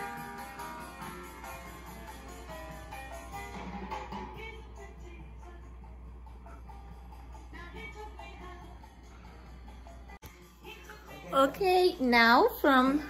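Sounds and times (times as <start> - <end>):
steady low hum: 0.0 - 11.7
music from vinyl record: 0.0 - 12.1.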